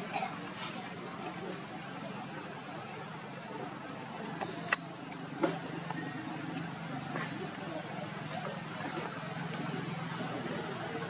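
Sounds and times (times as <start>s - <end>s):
low engine hum: 0.0s - 11.0s
sharp clicks: 4.4s - 5.2s.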